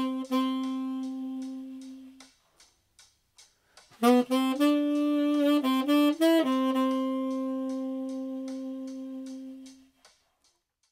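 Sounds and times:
held tenor saxophone note: 0:00.0 - 0:02.2, 0:04.0 - 0:09.8
faint drum machine ticks: 0:00.0 - 0:10.9.

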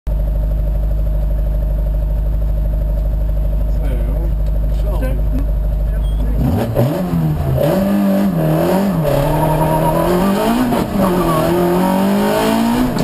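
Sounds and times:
car engine running: 0:00.1 - 0:13.0.

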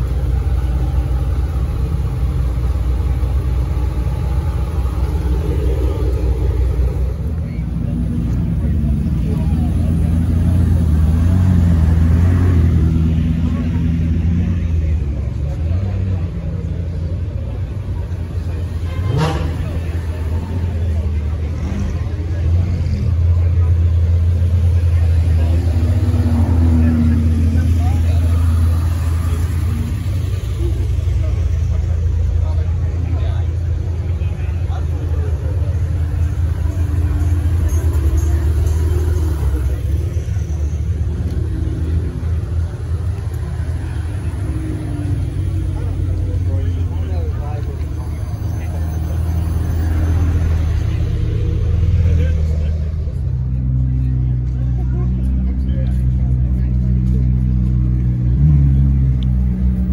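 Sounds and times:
crowd voices: 0:00.0 - 0:59.9
engine rev: 0:00.0 - 0:59.9
supercar engines rumbling: 0:00.0 - 0:59.9.

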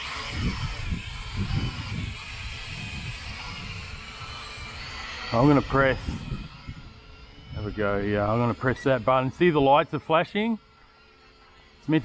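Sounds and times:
toy drone motors whining: 0:00.0 - 0:12.0
low gusty rumble: 0:00.1 - 0:10.0.

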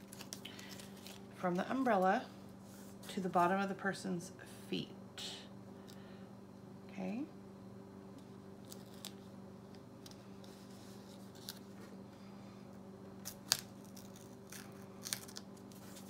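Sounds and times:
tape tearing and crackling: 0:00.0 - 0:01.2, 0:08.6 - 0:09.2, 0:11.2 - 0:11.7, 0:13.2 - 0:16.0
steady low hum: 0:00.0 - 0:16.0.

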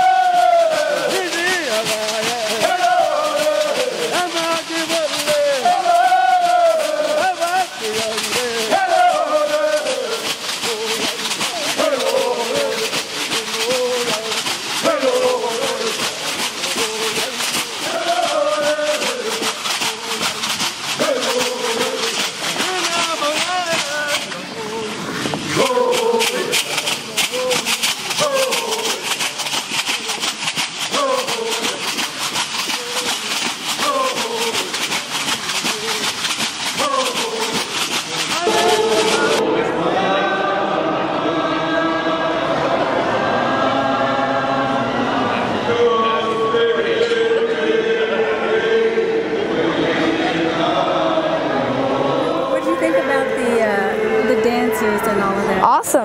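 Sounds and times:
men chanting: 0:00.0 - 0:55.6.

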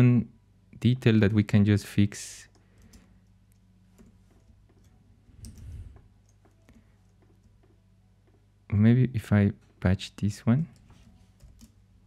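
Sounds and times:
low electrical hum: 0:00.0 - 0:12.0
computer mouse clicks: 0:02.5 - 0:08.4, 0:10.7 - 0:11.8
keyboard keys clicking: 0:02.5 - 0:08.4, 0:10.7 - 0:11.8.

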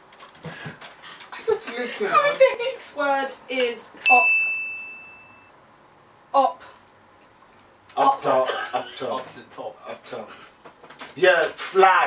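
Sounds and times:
bell-like ding: 0:04.1 - 0:05.5.

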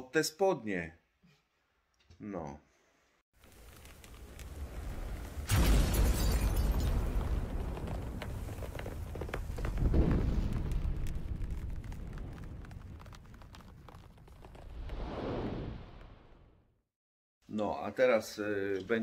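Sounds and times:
deep boom with rumble: 0:05.5 - 0:14.9
whoosh: 0:14.6 - 0:16.7.

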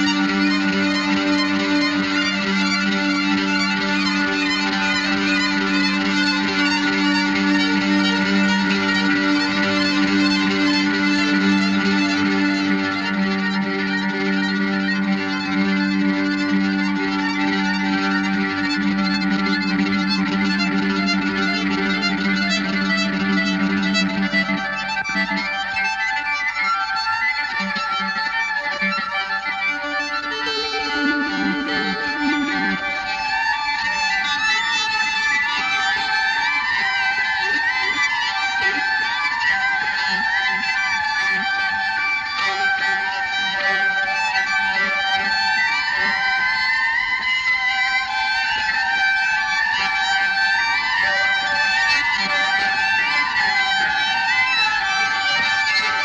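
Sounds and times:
rock band with violin: 0:00.0 - 0:56.0.

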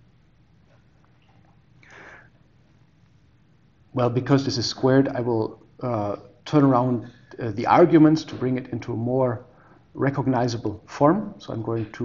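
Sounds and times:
faint low hum: 0:00.0 - 0:12.0
person breathing in through nose: 0:01.8 - 0:02.4.

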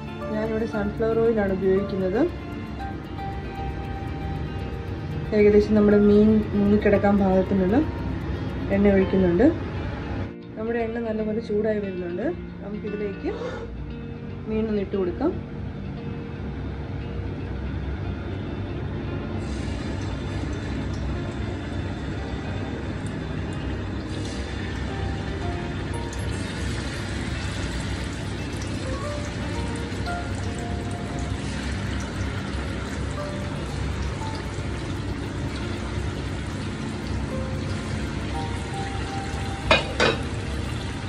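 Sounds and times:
background music: 0:00.0 - 0:41.0
fish sizzling in hot oil: 0:19.4 - 0:41.0.

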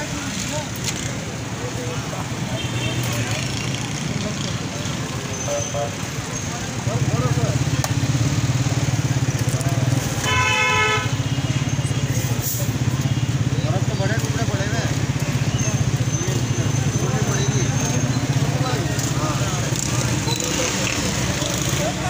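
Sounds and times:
vehicle horn toot: 0:10.2 - 0:11.3.

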